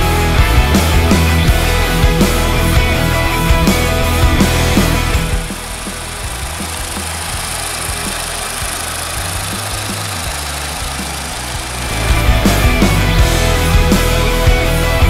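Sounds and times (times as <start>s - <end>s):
rock music: 0.0s - 15.0s
car engine idling: 0.1s - 15.0s.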